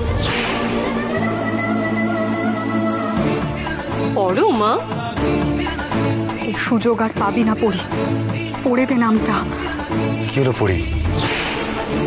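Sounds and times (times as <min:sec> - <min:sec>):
background music sustained notes: 0:00.0 - 0:12.0
whip-like swish falling in pitch: 0:00.1 - 0:00.8, 0:11.2 - 0:11.9.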